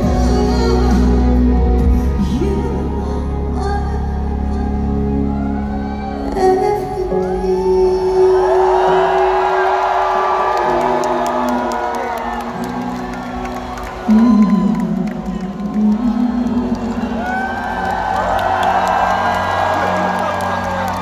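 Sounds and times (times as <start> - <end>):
woman singing: 0.0 - 10.9, 13.9 - 17.9
live pop ballad over loudspeakers: 0.0 - 21.0
crowd cheering and whooping: 5.0 - 21.0
people clapping: 8.7 - 21.0.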